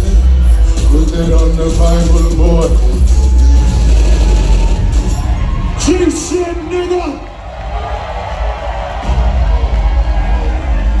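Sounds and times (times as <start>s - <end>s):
bass-heavy hip-hop beat: 0.0s - 11.0s.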